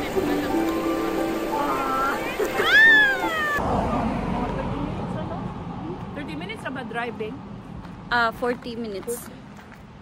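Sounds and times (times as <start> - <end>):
shallow river water rushing: 0.0 - 4.2
steady outdoor noise: 0.0 - 10.0.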